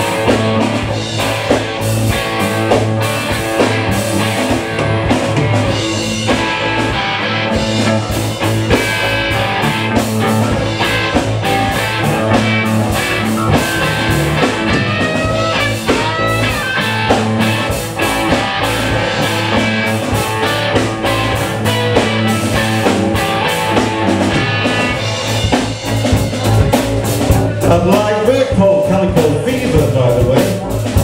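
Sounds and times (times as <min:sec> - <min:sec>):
bass guitar: 0:00.0 - 0:31.0
drum kit: 0:00.0 - 0:31.0
electric guitars: 0:00.0 - 0:31.0.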